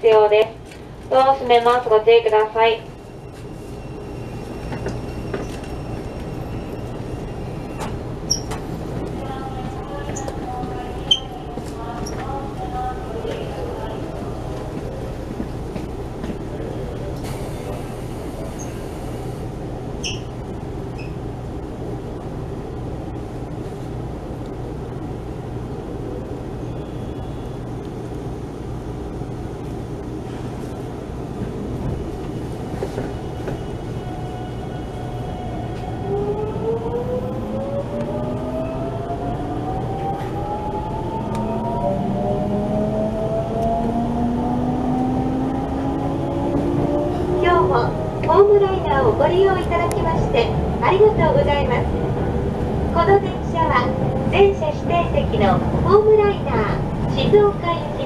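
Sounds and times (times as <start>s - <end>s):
electric train humming: 12.3s - 58.0s.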